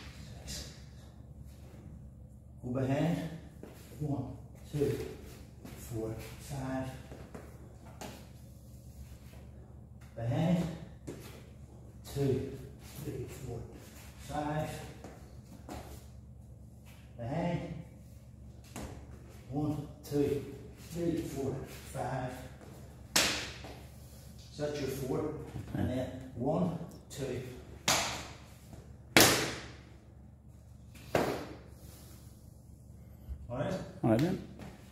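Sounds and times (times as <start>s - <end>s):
low room hum: 0.0s - 34.9s.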